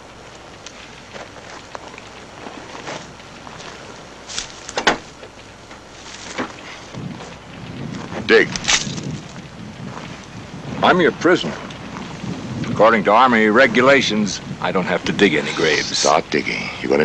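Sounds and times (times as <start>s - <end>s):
fire crackling and hissing: 0.0s - 17.0s.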